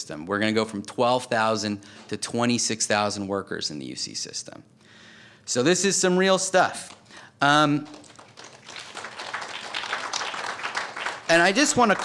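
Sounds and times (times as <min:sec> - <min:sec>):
audience applauding: 0:07.9 - 0:12.0.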